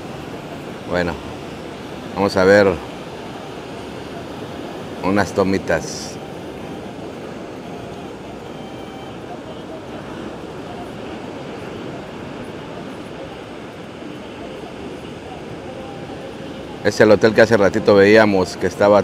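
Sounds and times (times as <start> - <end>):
ocean surf breaking: 0.0 - 19.0.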